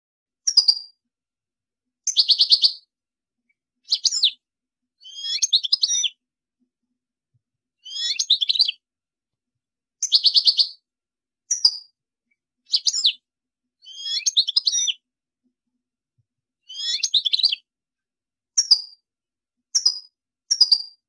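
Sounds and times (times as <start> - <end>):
goldfinch twittering: 3.9 - 4.4, 5.0 - 6.1, 7.8 - 8.7, 13.8 - 15.0, 16.7 - 17.6.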